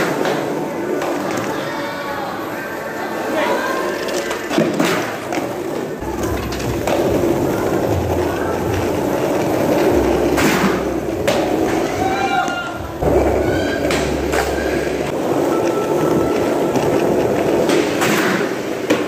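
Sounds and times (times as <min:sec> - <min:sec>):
skateboard clacking on ground: 0:00.0 - 0:01.7, 0:03.7 - 0:19.0
skateboard wheels rolling on concrete: 0:00.0 - 0:19.0.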